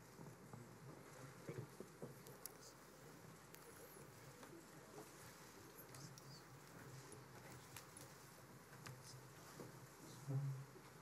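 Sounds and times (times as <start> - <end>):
faint clicks and shuffles: 0.0 - 11.0.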